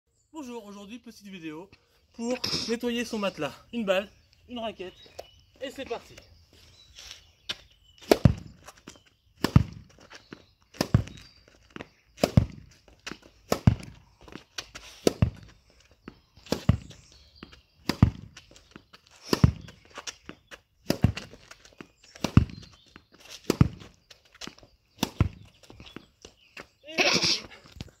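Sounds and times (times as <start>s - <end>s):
racket striking tennis ball: 8.0s - 8.6s, 9.4s - 9.9s, 10.8s - 11.2s, 12.2s - 12.7s, 13.5s - 14.0s, 15.0s - 15.5s, 17.8s - 18.4s, 19.3s - 19.7s, 20.8s - 21.3s, 22.2s - 22.6s, 23.4s - 23.8s, 25.0s - 25.4s.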